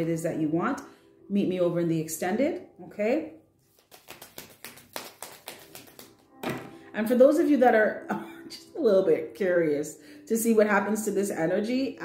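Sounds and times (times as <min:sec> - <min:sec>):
cards being shuffled: 0:03.6 - 0:06.7.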